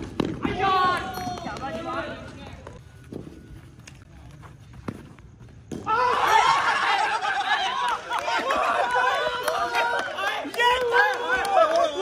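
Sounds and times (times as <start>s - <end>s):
men shouting and cheering: 5.8s - 12.0s.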